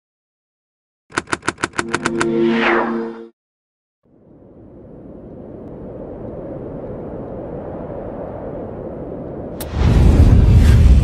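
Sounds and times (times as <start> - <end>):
rapid sharp clicks: 1.1 - 2.3.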